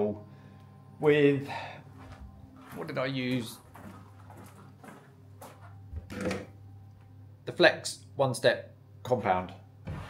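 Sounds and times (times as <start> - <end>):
steady low hum: 0.0 - 10.0
faint rustles of movement: 1.9 - 5.8.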